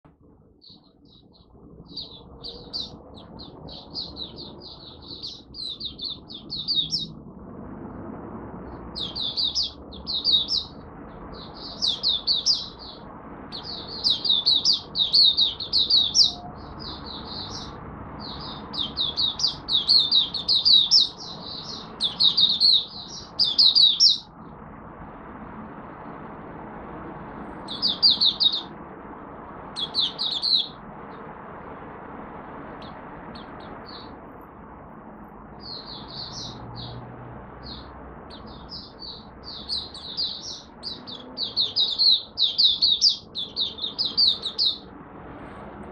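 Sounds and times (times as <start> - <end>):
bird twittering: 0.6 - 7.2, 9.0 - 10.8, 11.4 - 24.3, 27.6 - 28.8, 29.8 - 30.8, 35.6 - 37.0, 37.6 - 44.9.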